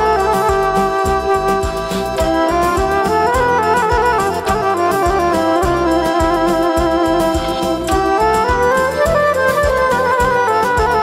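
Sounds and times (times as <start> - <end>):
folk dance tune: 0.0 - 11.0.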